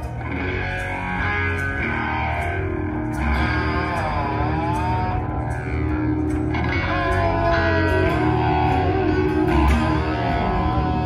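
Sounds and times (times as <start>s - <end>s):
bass guitar: 0.0s - 11.0s
distorted electric guitars: 0.0s - 11.0s
lead guitar bending pitch: 0.0s - 11.0s.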